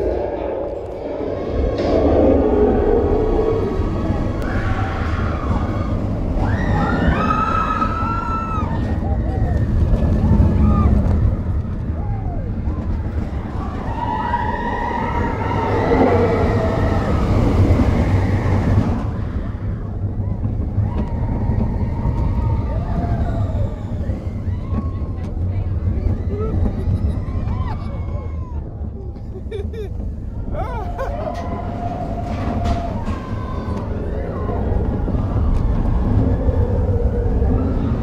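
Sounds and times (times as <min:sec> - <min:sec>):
roller coaster rumbling on track: 0:00.0 - 0:38.0
riders shrieking: 0:01.9 - 0:11.2.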